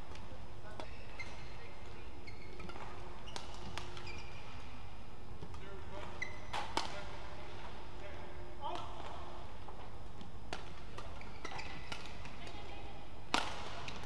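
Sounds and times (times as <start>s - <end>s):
court shoes squeaking: 0.1s - 7.5s, 9.6s - 12.7s
racket hitting shuttlecock: 6.5s - 7.1s, 13.3s - 14.0s.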